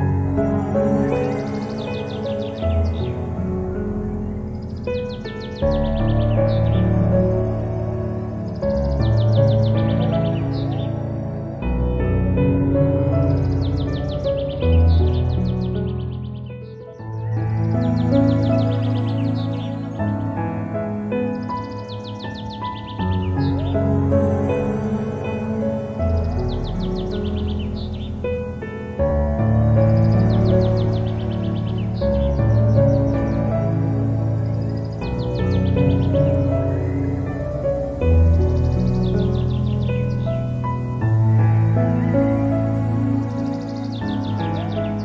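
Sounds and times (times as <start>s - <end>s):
calm instrumental music: 0.0s - 45.0s.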